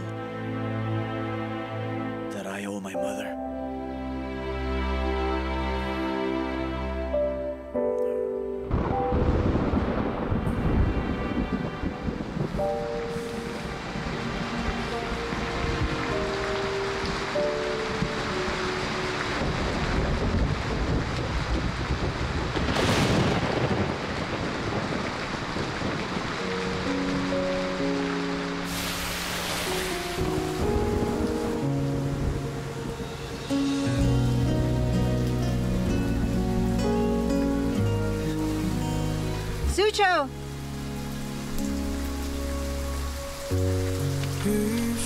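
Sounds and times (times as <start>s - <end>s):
soft background music: 0.0s - 21.5s, 25.9s - 45.0s
heavy rain: 3.6s - 45.0s
thunder rumbling: 8.7s - 38.6s.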